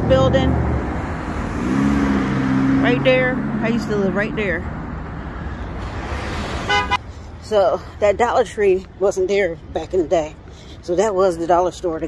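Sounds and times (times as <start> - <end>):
cars driving past: 0.0 - 9.0
steady low vehicle drone: 0.0 - 10.8.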